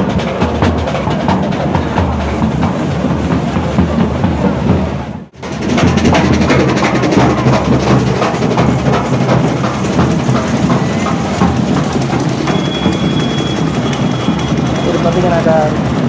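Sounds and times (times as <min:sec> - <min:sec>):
drum band drumming fast: 0:00.0 - 0:16.0
high-pitched tone: 0:12.5 - 0:15.4.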